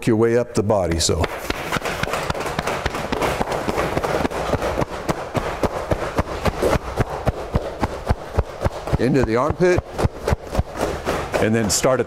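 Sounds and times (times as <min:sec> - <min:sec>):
cupped hands slapping body: 0:01.2 - 0:12.0.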